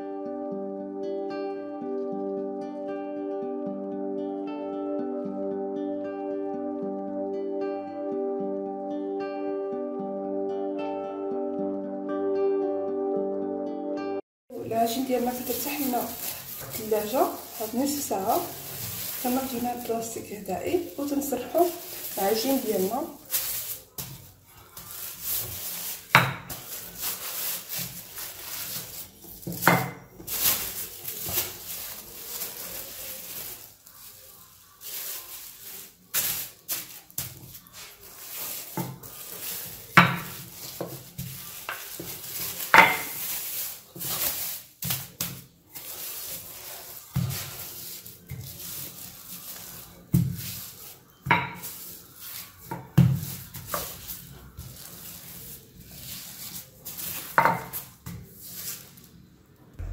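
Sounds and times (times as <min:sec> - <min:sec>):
plastic bag crinkling: 0:14.5 - 0:59.2
rolling pin on countertop: 0:14.7 - 0:31.8, 0:35.8 - 0:58.8.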